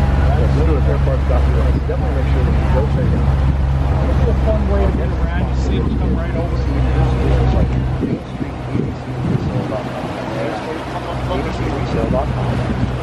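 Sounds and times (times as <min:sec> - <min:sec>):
background chatter: 0:00.0 - 0:13.0
boat motor droning: 0:00.0 - 0:13.0.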